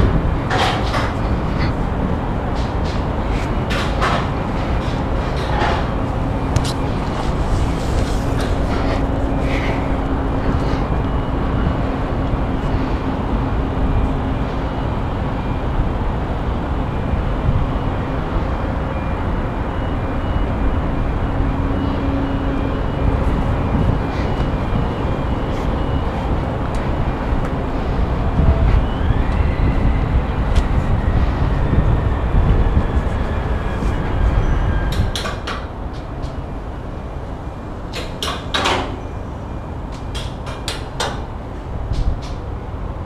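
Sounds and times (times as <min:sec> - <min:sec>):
wind rushing over microphone: 0:00.0 - 0:43.0.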